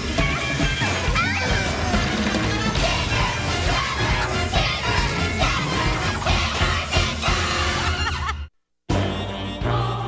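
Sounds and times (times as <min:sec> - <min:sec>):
upbeat cartoon theme music: 0:00.0 - 0:10.0.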